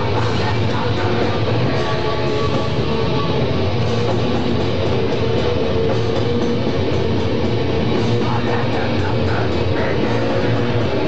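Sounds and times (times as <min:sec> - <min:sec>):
distorted electric guitar: 0:00.0 - 0:11.0
heavy metal band playing: 0:00.0 - 0:11.0.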